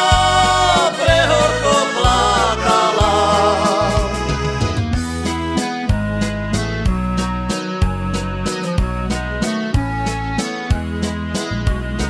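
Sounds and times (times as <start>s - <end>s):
accordion melody: 0.0s - 12.0s.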